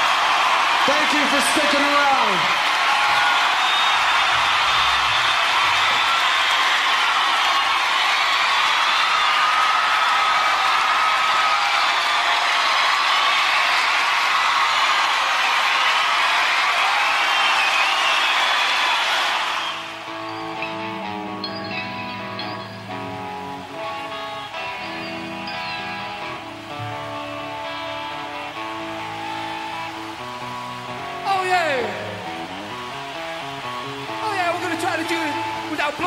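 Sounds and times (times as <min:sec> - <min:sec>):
audience cheering and applauding: 0:00.0 - 0:36.0
guitar playing: 0:20.0 - 0:36.0.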